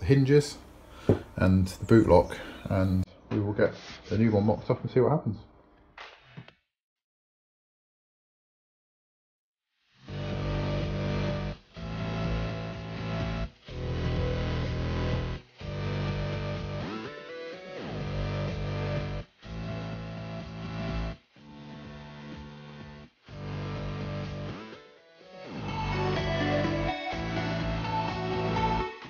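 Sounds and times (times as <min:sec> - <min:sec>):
guitar playing sustained chords: 0:25.5 - 0:29.0.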